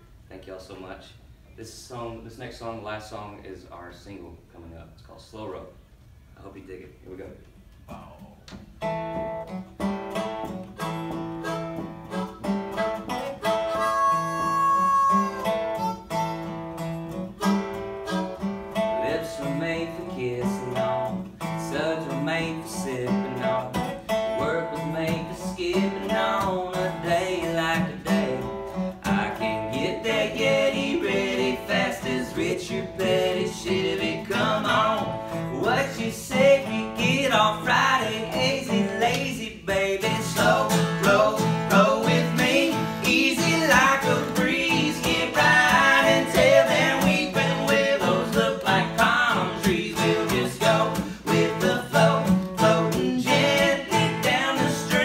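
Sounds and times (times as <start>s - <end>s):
resonator guitar: 7.7s - 55.0s
strummed acoustic guitar: 8.6s - 55.0s
harmonica melody: 10.6s - 19.2s, 26.7s - 38.7s, 40.4s - 55.0s
man singing: 18.9s - 55.0s.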